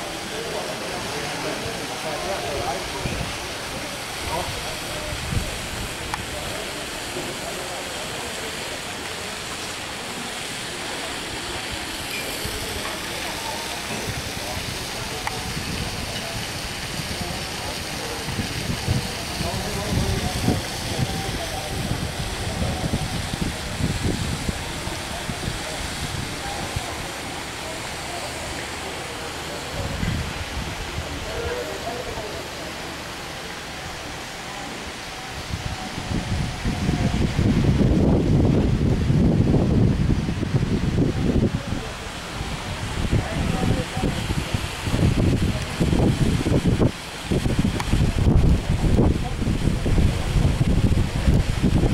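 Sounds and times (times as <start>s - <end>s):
faint distant voices: 0.0s - 51.9s
steady hiss: 0.0s - 51.9s
wind rumbling on microphone: 1.6s - 8.0s, 9.4s - 28.9s, 29.5s - 31.9s, 33.0s - 51.9s.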